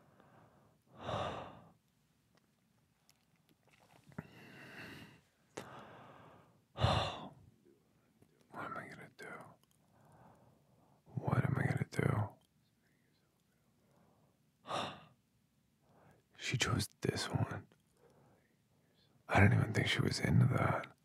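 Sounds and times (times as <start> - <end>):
man sighing and breathing: 4.2 - 7.3
man whispering: 7.6 - 9.8, 11.0 - 13.9, 16.0 - 21.0.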